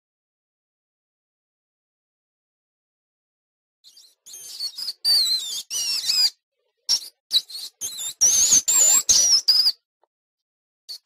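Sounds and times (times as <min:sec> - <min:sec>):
small animal squeaking and chirping: 0:03.9 - 0:09.8.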